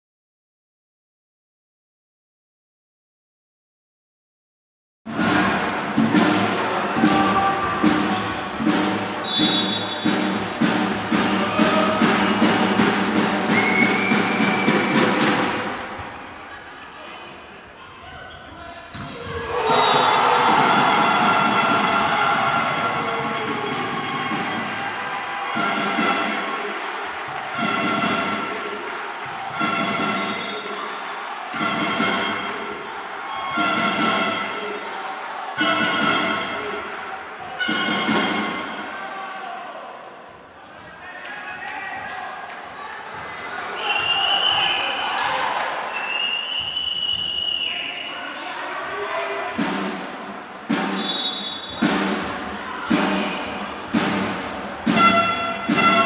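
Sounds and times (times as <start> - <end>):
loud rhythmic banging: 5.1 - 16.2, 19.2 - 39.1, 49.4 - 56.0
crowd noise: 5.1 - 56.0.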